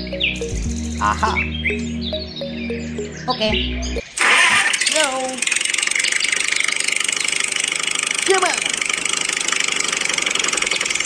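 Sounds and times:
tractor engine idling: 0.0 - 11.0
person speaking: 1.0 - 1.5.

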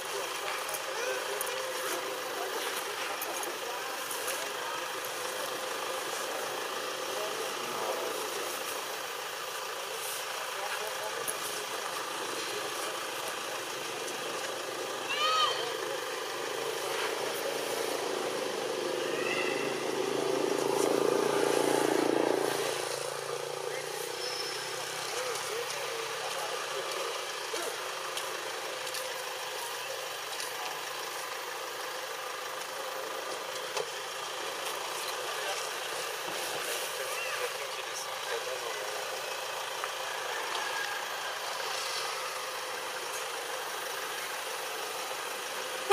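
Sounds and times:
outdoor background noise: 0.0 - 45.9
high chirping calls: 19.0 - 19.9, 24.0 - 24.9.

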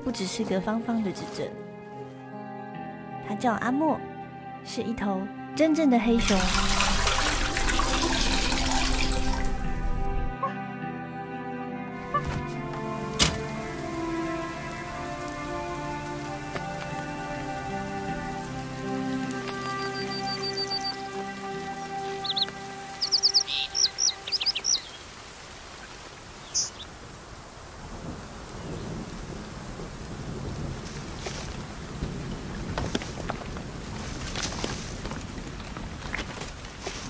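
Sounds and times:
soft sustained music: 0.0 - 25.2
steady rain: 6.2 - 10.3, 12.6 - 37.0
low thunder rumble: 27.7 - 34.1.

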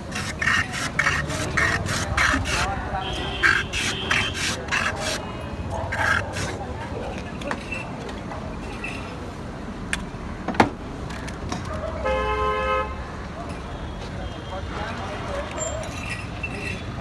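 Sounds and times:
voices: 0.2 - 9.3
vehicle horn honk: 3.0 - 4.4.

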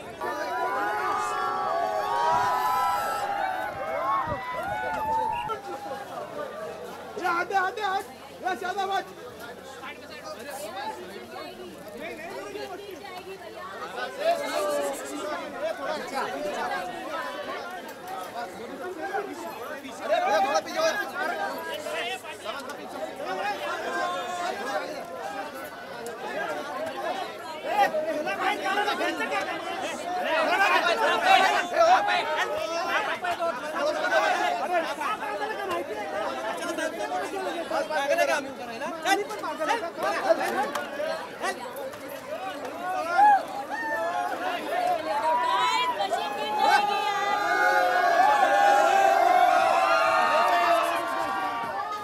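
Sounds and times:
crowd talking and calling out: 0.0 - 52.0.

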